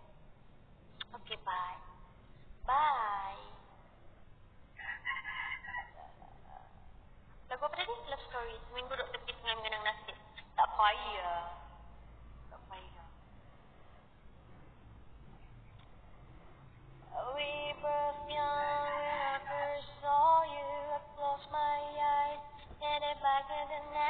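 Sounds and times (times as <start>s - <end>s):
faint low hum: 0.0s - 24.0s
rooster crowing: 4.8s - 6.3s, 18.3s - 21.0s.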